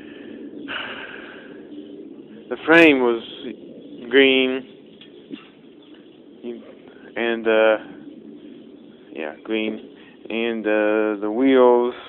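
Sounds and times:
hissing exhale: 0.0 - 1.7.

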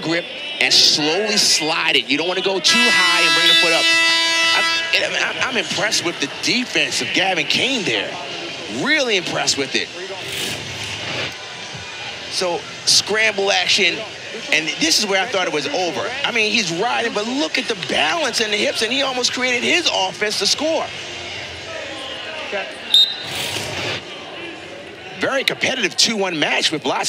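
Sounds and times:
arena crowd noise: 0.0 - 27.0
referee's whistle blast: 2.6 - 5.4, 22.9 - 23.4.

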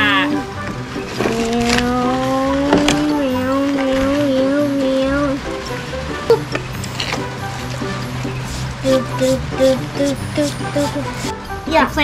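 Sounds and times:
plastic toys clicking: 1.1 - 5.3
child humming engine noise: 1.2 - 5.5, 8.4 - 11.3.

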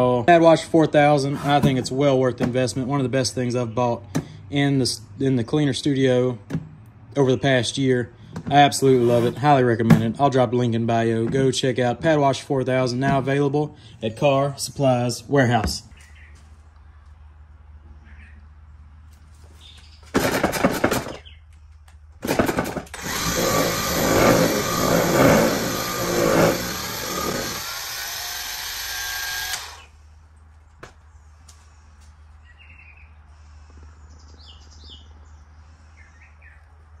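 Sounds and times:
polisher pad spinning: 23.0 - 29.8.

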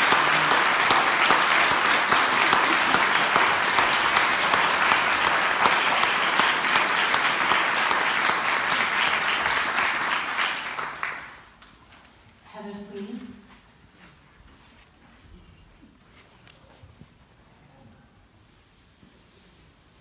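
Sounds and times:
audience applause: 0.0 - 11.6.

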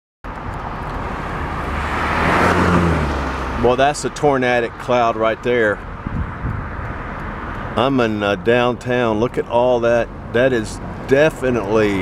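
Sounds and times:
car approaching: 0.2 - 12.0
road traffic noise: 0.2 - 12.0.

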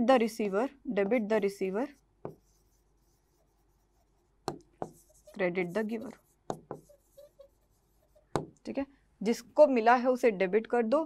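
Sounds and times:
chalk writing strokes: 1.4 - 8.6
chalk tapping on blackboard: 1.9 - 8.6.

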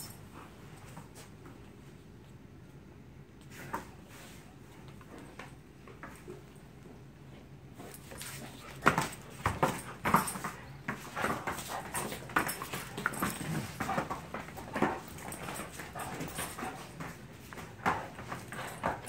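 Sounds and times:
dogs play-wrestling: 3.4 - 19.0.

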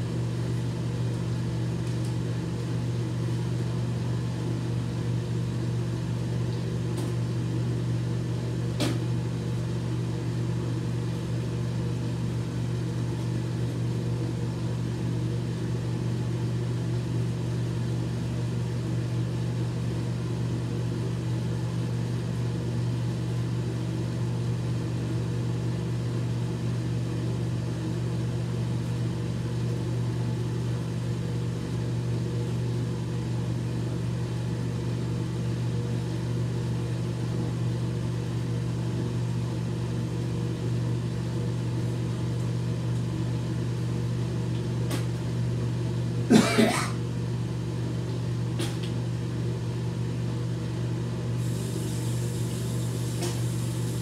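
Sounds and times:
low machine hum: 0.0 - 54.0.

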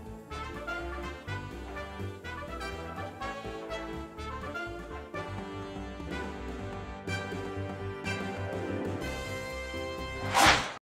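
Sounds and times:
theme music: 0.0 - 10.8
swishing sound effect: 10.2 - 10.8.

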